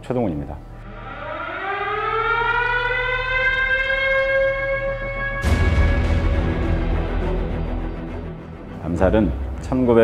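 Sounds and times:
air-raid siren winding up: 0.8 - 7.5.

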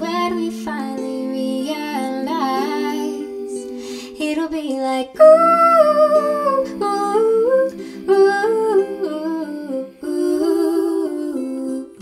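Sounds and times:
women singing in harmony: 0.0 - 12.0.

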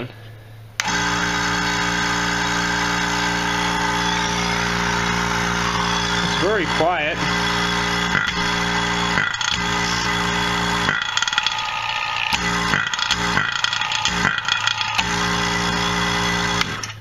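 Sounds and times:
vacuum pump humming drone: 0.0 - 17.0
pump rattle: 0.8 - 17.0.

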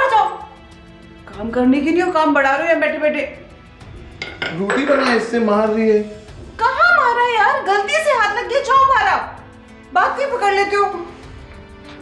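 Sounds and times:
faint background music: 0.0 - 12.0
kitchen utensils clattering: 4.2 - 5.3.

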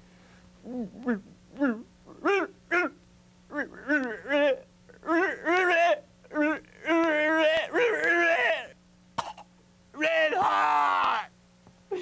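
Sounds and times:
man sobbing and wailing: 0.7 - 8.8, 10.0 - 11.3.

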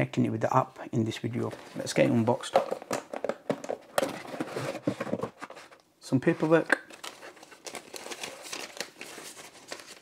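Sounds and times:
paper rustles and scrapes: 4.1 - 10.0.

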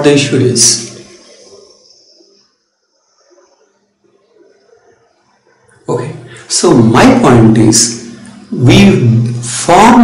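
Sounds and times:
person speaking: 0.0 - 10.0.

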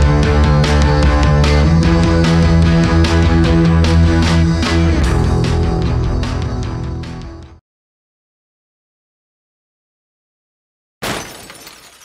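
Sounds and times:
glass breaking: 11.0 - 12.0
tinkling glass shards: 11.0 - 12.0.

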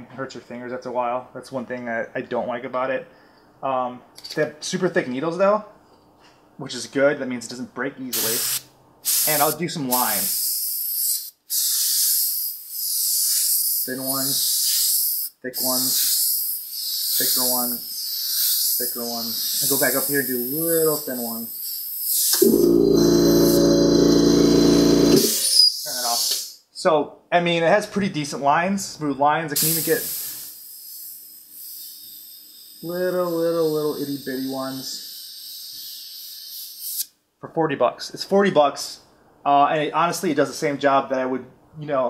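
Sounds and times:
airbrush spraying hiss: 8.2 - 22.4, 25.3 - 26.6, 29.6 - 37.1.

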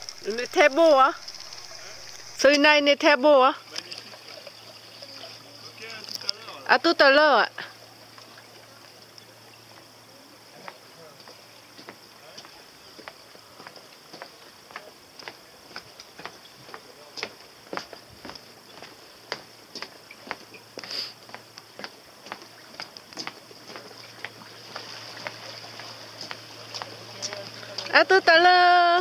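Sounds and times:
outboard motor humming: 0.0 - 29.0
footsteps on wooden deck: 10.6 - 28.5.

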